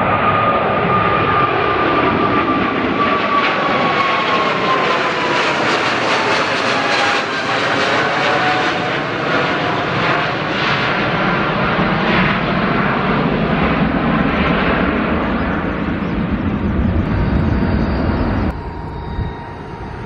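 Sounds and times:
crackling jet rumble: 0.0s - 20.0s
jet airliner engines roaring: 0.0s - 20.0s
high engine whine: 14.7s - 20.0s.

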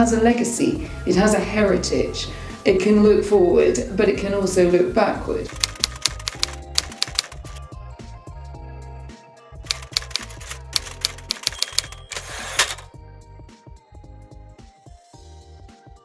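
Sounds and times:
soft music: 0.0s - 16.0s
typewriter keys striking: 5.5s - 7.6s, 9.7s - 12.9s.

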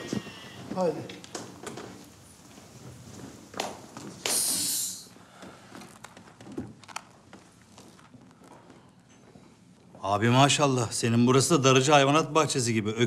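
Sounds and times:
short loud hiss: 4.2s - 5.1s.

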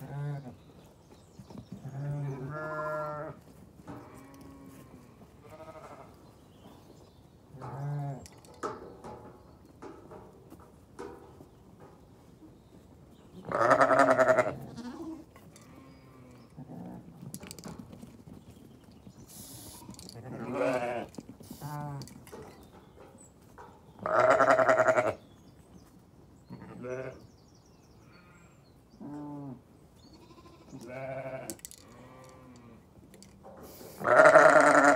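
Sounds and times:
sheep bleating: 13.4s - 15.2s, 19.7s - 21.1s, 24.0s - 25.2s, 30.2s - 32.6s, 34.0s - 34.9s.

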